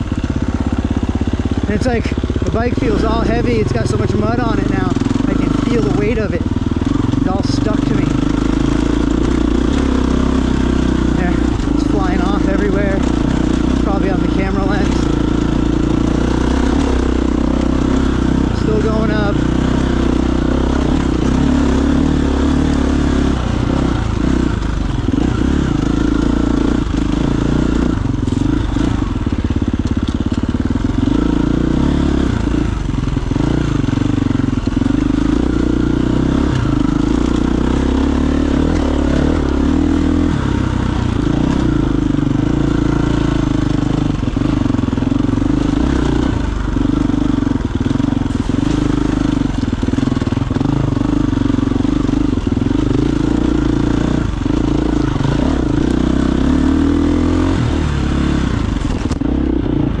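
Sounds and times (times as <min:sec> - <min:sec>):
dirt bike engine revving: 0:00.0 - 1:00.0.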